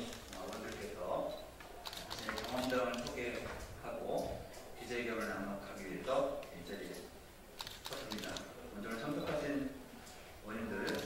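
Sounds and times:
people speaking: 0:00.0 - 0:01.5, 0:02.1 - 0:07.1, 0:07.9 - 0:09.8, 0:10.4 - 0:11.0
sharp light clicks: 0:00.0 - 0:09.3.

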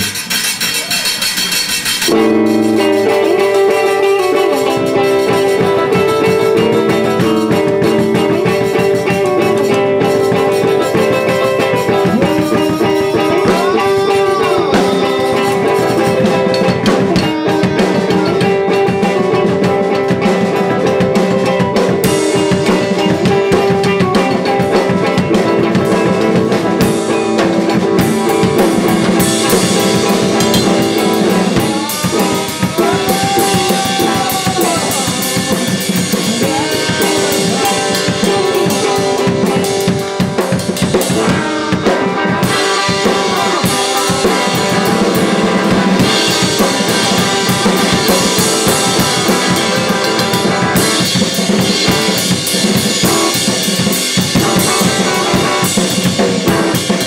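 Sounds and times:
amplified electric guitar: 0:00.0 - 0:57.0
drum kit: 0:00.0 - 0:57.0.

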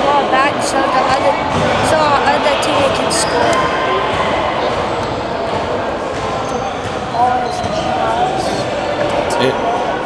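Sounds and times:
people talking: 0:00.0 - 0:03.7, 0:06.2 - 0:10.0
basketballs bouncing on court: 0:00.9 - 0:09.3.

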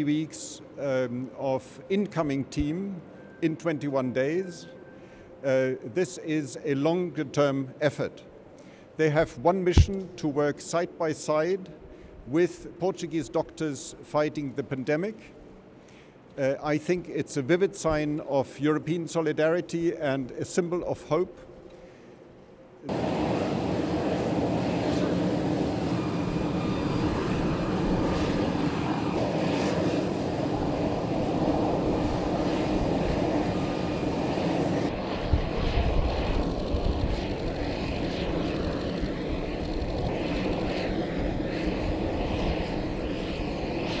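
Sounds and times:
aircraft engine noise: 0:00.0 - 0:05.9, 0:21.6 - 0:44.0.

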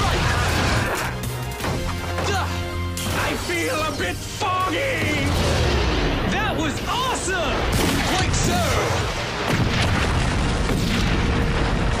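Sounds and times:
music: 0:00.0 - 0:09.5
large explosions booming: 0:05.0 - 0:06.6, 0:07.4 - 0:12.0.

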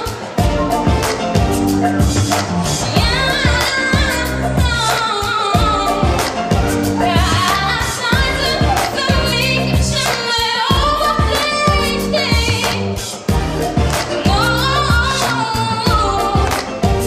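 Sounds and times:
bass: 0:00.0 - 0:17.0
steady beat: 0:00.0 - 0:17.0
woman singing into a microphone: 0:02.8 - 0:13.0, 0:14.2 - 0:16.8.

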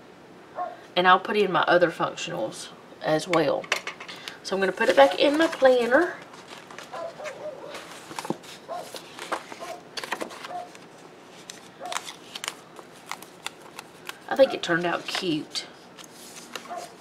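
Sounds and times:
paper pages rustling: 0:04.7 - 0:17.0.

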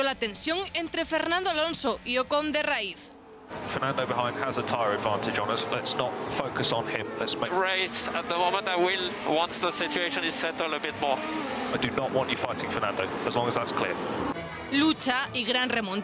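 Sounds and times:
racing car engines: 0:03.1 - 0:15.7.

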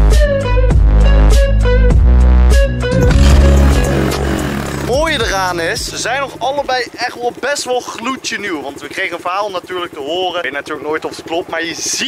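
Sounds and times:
motorbike engine idling: 0:03.1 - 0:12.0.

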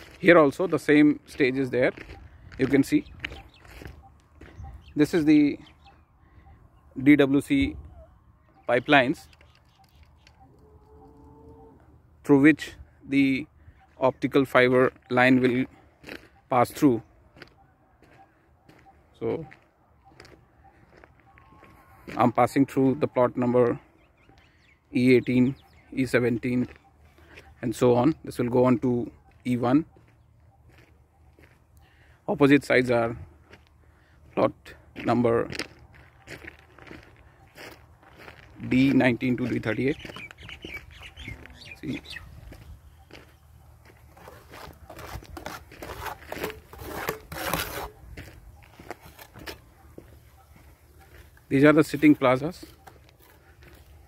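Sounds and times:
footsteps on dirt road: 0:00.0 - 0:07.1, 0:13.8 - 0:54.0
bird chirp: 0:01.3 - 0:12.0, 0:13.1 - 0:32.2, 0:36.0 - 0:45.0, 0:47.8 - 0:54.0.

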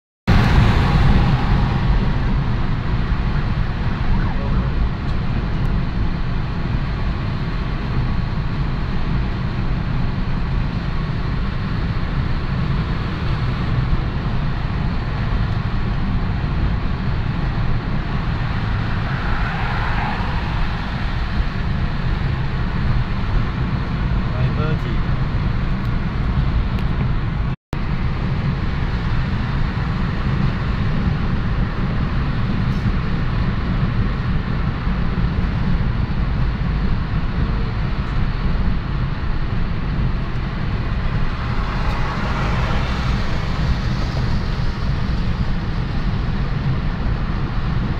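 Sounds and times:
road and engine noise inside car: 0:00.3 - 0:47.9.

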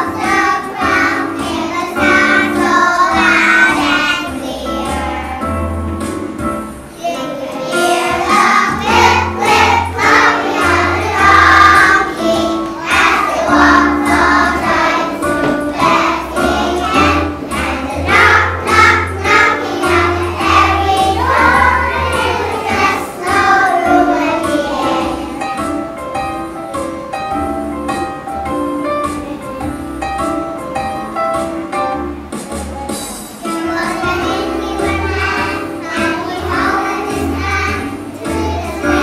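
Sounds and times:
children's choir singing: 0:00.0 - 0:25.9, 0:33.0 - 0:39.0
instrumental accompaniment with bass: 0:00.0 - 0:39.0.

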